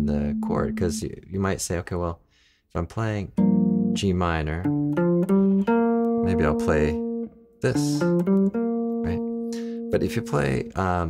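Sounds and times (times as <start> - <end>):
electric guitar single notes: 0.0 - 1.2, 3.4 - 11.0.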